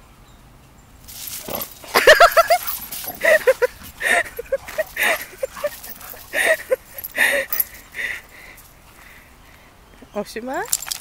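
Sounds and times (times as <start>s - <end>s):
dogs scuffling: 1.0s - 9.2s
dogs barking: 1.4s - 6.8s.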